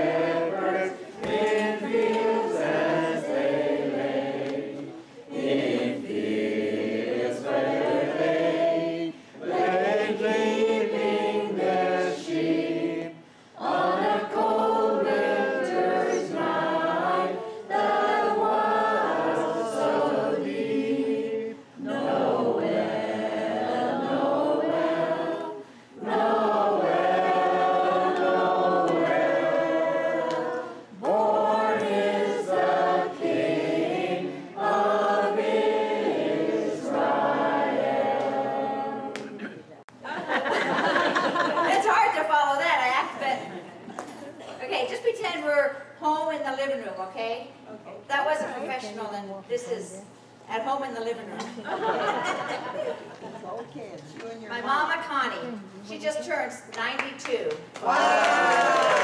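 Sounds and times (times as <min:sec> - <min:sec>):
group of voices singing: 0:00.0 - 0:39.6.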